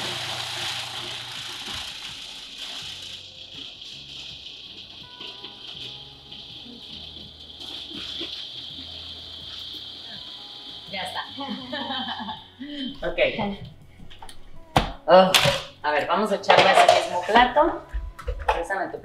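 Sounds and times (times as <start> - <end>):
food processor chopping: 0.0 - 3.2.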